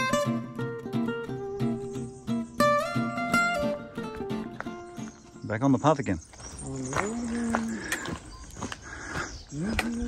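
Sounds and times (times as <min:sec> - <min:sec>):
footsteps on gravel: 0:04.0 - 0:10.0.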